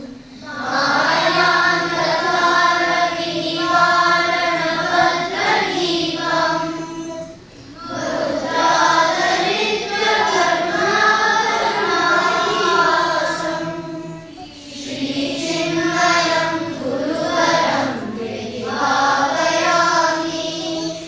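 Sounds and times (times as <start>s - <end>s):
children chanting in unison: 0.0s - 21.0s.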